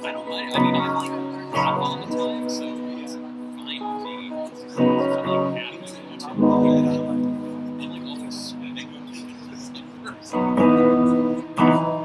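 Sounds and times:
electric guitar playing: 0.0s - 12.0s.

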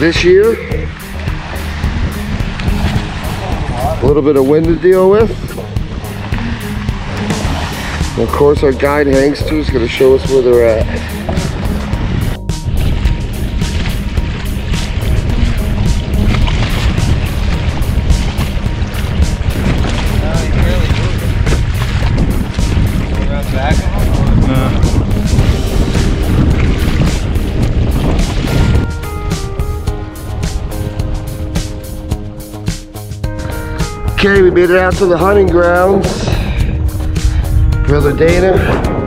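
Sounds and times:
music: 0.0s - 39.0s
water splashing along a hull: 0.0s - 39.0s
wind buffeting microphone: 0.0s - 39.0s.

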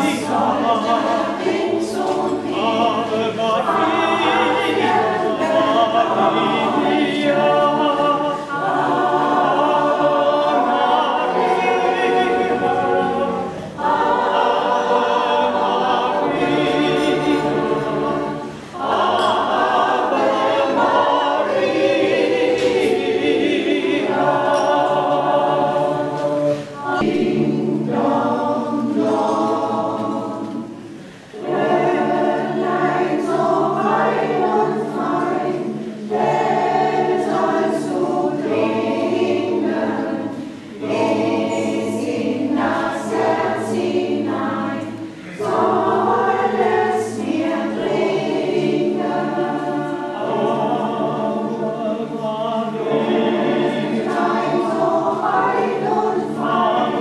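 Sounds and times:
choir singing unaccompanied: 0.0s - 57.0s.

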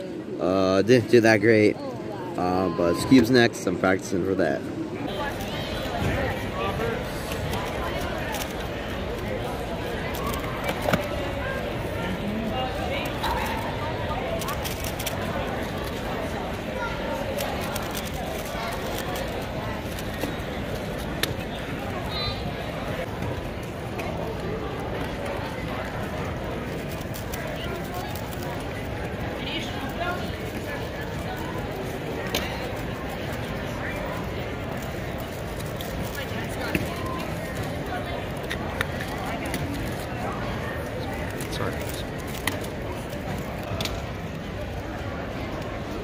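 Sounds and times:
indistinct chatter of many people: 0.0s - 46.0s.

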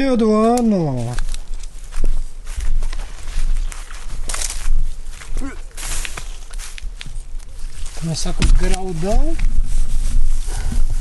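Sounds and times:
straw and leaves rustling: 0.0s - 11.0s.

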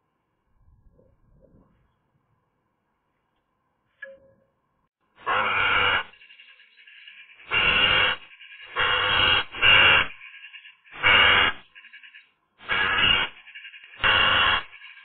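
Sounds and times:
magpie harsh calls: 5.3s - 15.0s
faint bird chatter: 6.1s - 8.8s, 10.1s - 11.0s, 11.6s - 12.4s, 13.2s - 14.0s, 14.6s - 15.0s.

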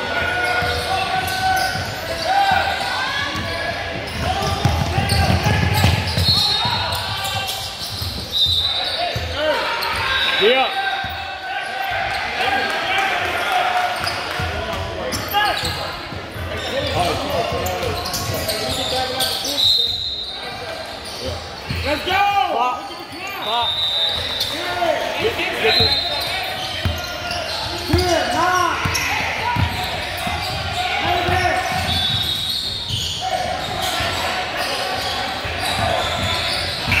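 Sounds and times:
sneakers squeaking: 0.1s - 12.4s, 13.8s - 37.0s
basketball bouncing: 4.0s - 6.4s.

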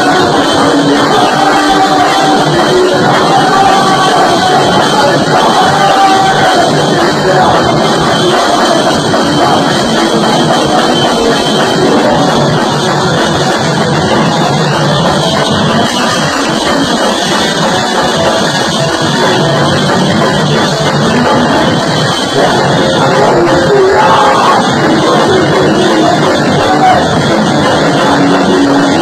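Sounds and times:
drum kit: 0.0s - 29.0s
electric guitar: 0.0s - 29.0s.

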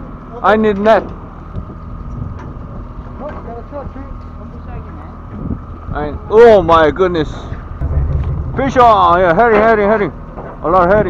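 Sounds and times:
boat engine drone: 1.2s - 10.9s
wind buffeting microphone: 1.5s - 3.2s, 5.2s - 11.0s.

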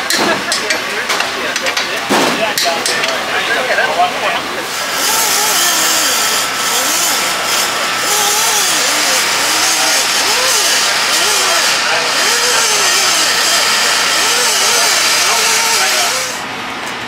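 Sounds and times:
indistinct voices talking: 0.0s - 16.4s
loud steady hiss: 4.6s - 16.5s.

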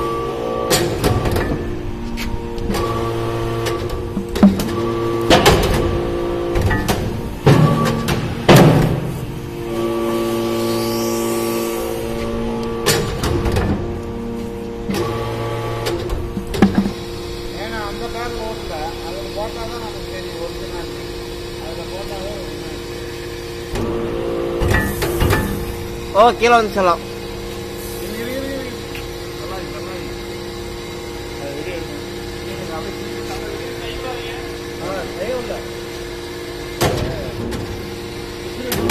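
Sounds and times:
hydraulic pump hum: 0.0s - 38.9s.

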